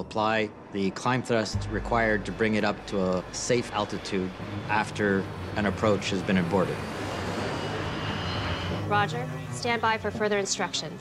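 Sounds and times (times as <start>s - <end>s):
faint high whine: 0.0s - 11.0s
jet engines rushing: 1.4s - 11.0s.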